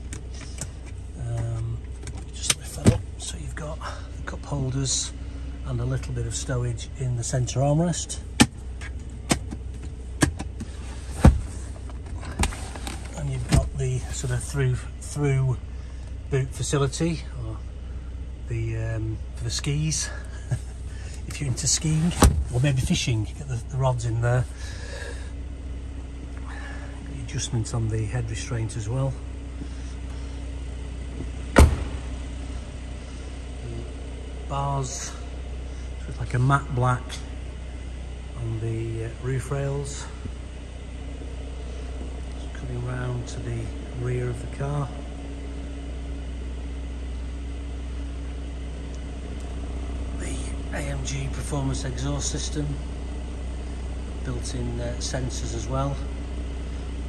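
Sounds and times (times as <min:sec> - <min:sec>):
low steady hum: 0:00.0 - 0:57.0
car door shutting: 0:02.0 - 0:03.1, 0:10.2 - 0:13.9, 0:21.9 - 0:22.7, 0:31.2 - 0:32.3
armrest and latch clicks and knocks: 0:08.4 - 0:13.7, 0:31.2 - 0:32.1.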